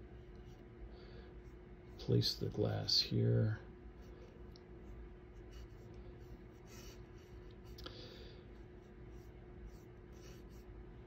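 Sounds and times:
paintbrush swishing on canvas: 8.6s - 10.7s.

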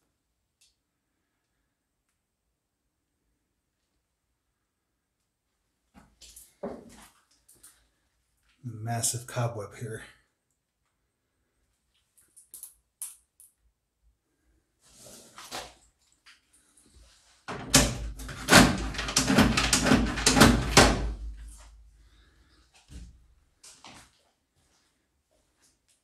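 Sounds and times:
hinged lid clattering and banging: 17.5s - 21.4s.

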